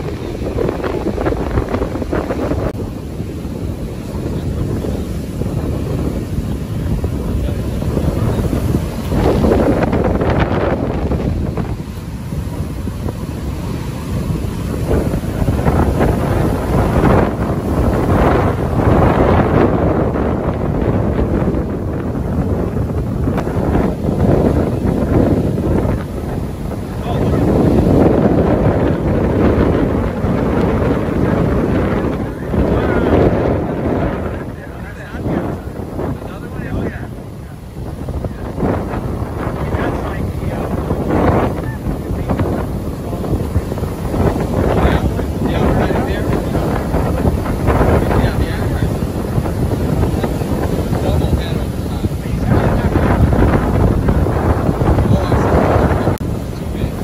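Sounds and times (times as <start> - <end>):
heavy surf breaking: 0.0 - 57.0
storm wind buffeting microphone: 0.0 - 57.0.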